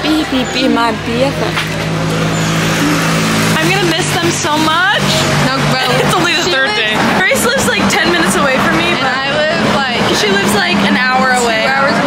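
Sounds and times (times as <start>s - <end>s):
vehicle engine humming: 0.0s - 12.0s
voices: 0.0s - 12.0s.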